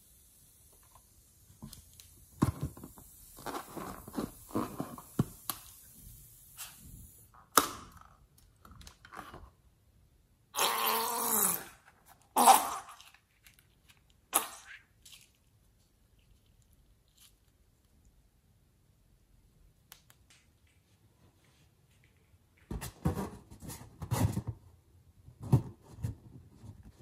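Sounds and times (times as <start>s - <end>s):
hands squeaking on slimy balloon: 10.6s - 11.8s, 14.3s - 15.2s.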